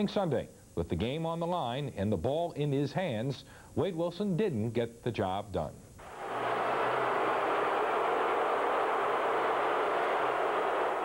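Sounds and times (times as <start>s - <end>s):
stadium crowd booing: 6.0s - 11.0s.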